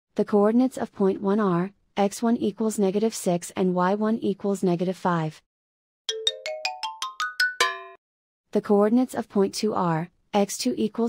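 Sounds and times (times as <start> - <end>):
electronic chime rising notes: 6.1 - 8.0.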